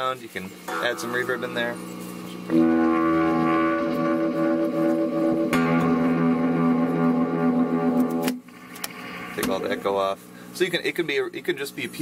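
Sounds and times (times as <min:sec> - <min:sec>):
electric guitar chords with echo: 0:00.7 - 0:09.6.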